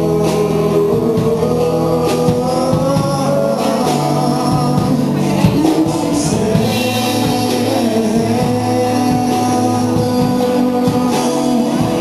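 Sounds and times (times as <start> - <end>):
acoustic guitar strumming: 0.0 - 12.0
electric guitar: 0.0 - 12.0.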